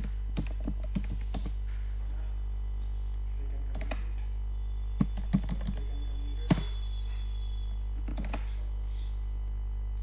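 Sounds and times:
electrical hum with high whine: 0.0 - 10.0.

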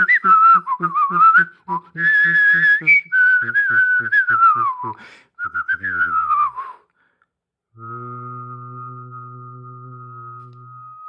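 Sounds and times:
person whistling high note: 0.0 - 6.9, 7.8 - 11.0
person singing low note: 7.8 - 11.0.

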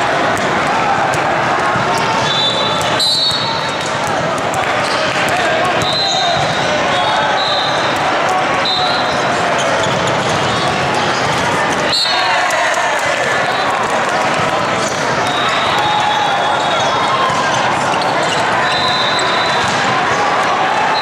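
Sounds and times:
din of many voices: 0.0 - 21.0.

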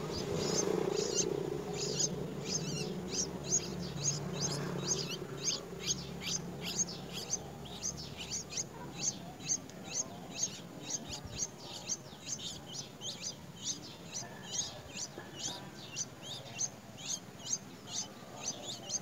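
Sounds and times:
steady low hum: 0.0 - 18.9
nestlings chirping high: 0.0 - 19.0.

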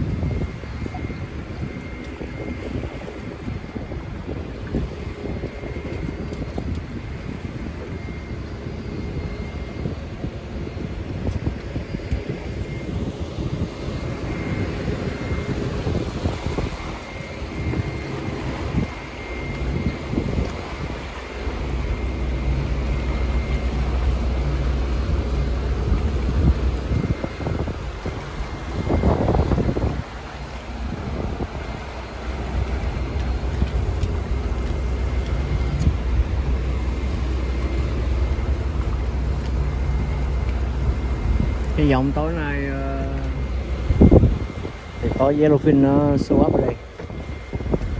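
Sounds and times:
outboard motor running: 0.0 - 47.9
wind buffeting microphone: 0.0 - 47.9.

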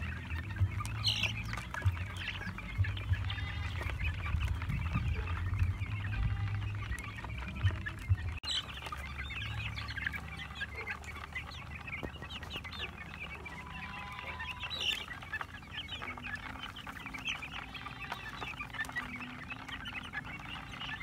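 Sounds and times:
chicks peeping and chirping: 0.0 - 21.0.

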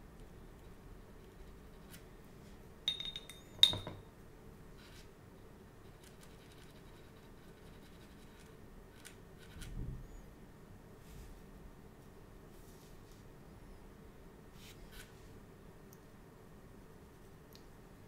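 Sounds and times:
paintbrush clinking on glass jar: 2.9 - 4.0.

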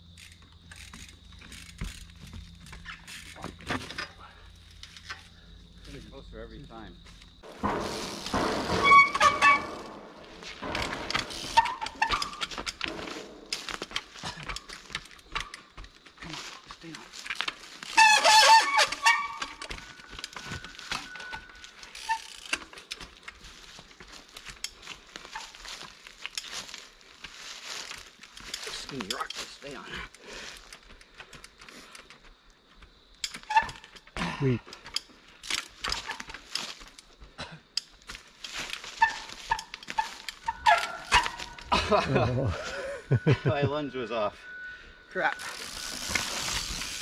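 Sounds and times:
bike tyres knocking on stone: 7.4 - 14.2
short high squeals: 7.5 - 13.6, 17.8 - 22.6, 38.9 - 41.7, 43.8 - 47.0.

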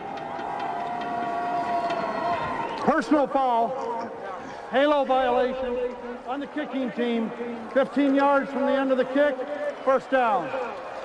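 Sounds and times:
man announcing over public address: 2.8 - 10.8.

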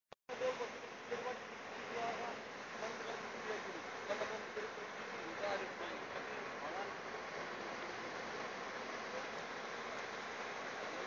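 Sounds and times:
faint distant voices: 0.3 - 11.0
sea and wind hiss: 0.3 - 11.0.

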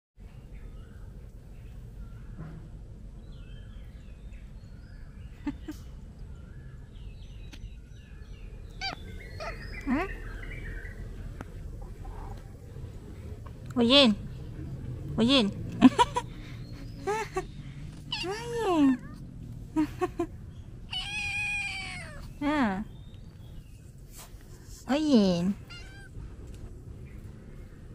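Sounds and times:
faint birdsong chirping: 0.2 - 27.9
kitten meowing: 8.8 - 9.7, 18.1 - 19.2, 20.9 - 22.4, 25.6 - 26.2.

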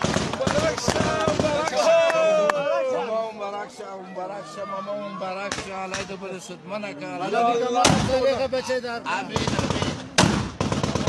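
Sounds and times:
automatic gunfire bursts: 9.3 - 11.0.

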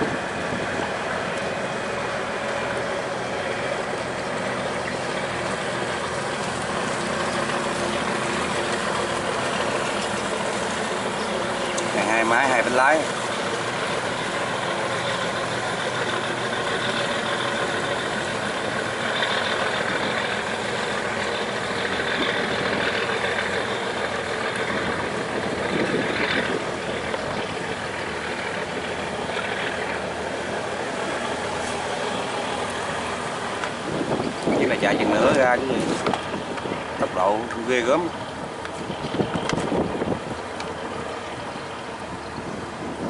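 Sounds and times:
barge diesel engines running: 0.0 - 43.0
water rushing along hull: 0.0 - 43.0.

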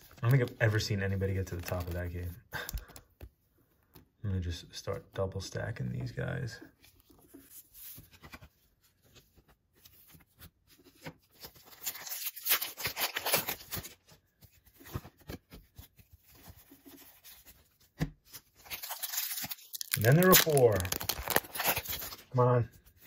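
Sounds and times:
foil wrapper crinkling: 18.6 - 22.2.

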